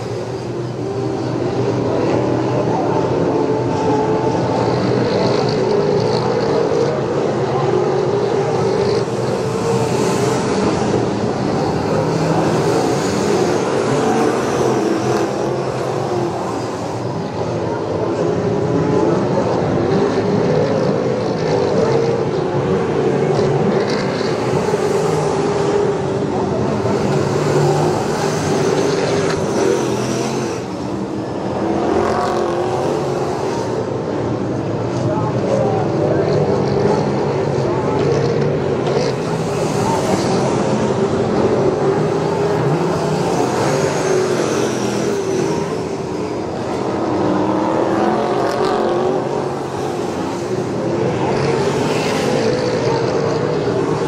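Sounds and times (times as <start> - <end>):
race car engines revving: 0.0 - 54.0.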